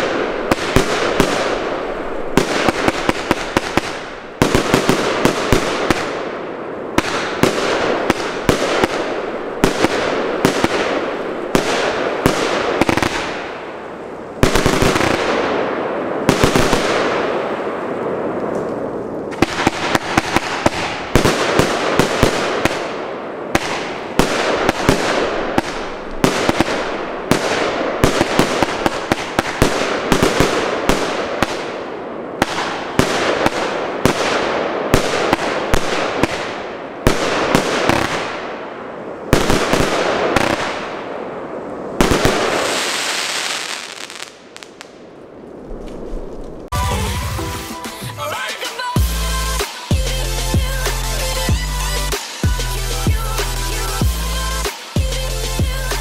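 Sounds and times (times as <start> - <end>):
fireworks shots and aerial bursts: 0.0 - 56.0
fireworks hiss: 42.1 - 44.9, 48.8 - 56.0.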